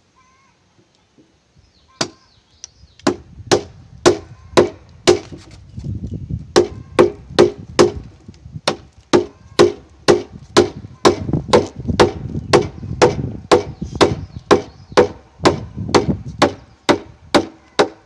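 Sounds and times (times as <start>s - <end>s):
wooden mallet striking chisel: 8.6s - 18.0s.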